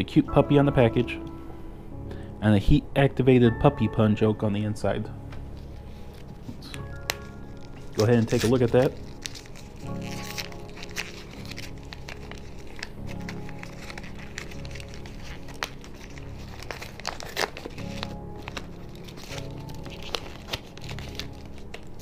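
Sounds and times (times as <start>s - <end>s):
soft background music: 0.0s - 22.0s
paper wrapper crinkling: 5.5s - 22.0s.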